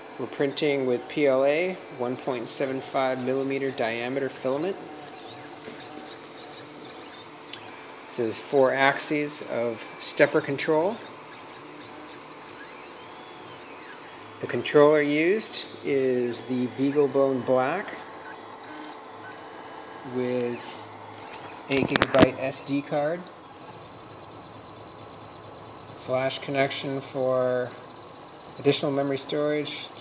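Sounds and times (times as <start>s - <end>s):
printer stepper motors whining: 0.0s - 30.0s
printer click: 20.3s - 22.6s.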